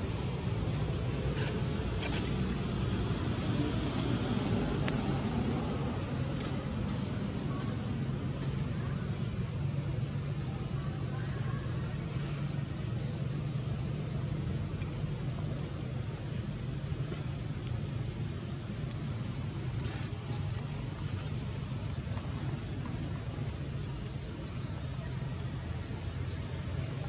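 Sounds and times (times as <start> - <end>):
low outdoor rumble: 0.0 - 27.0.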